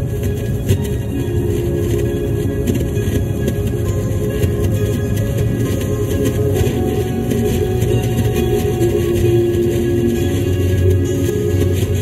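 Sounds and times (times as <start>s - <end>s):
music playing: 0.0s - 12.0s
vehicle road rumble: 0.0s - 12.0s.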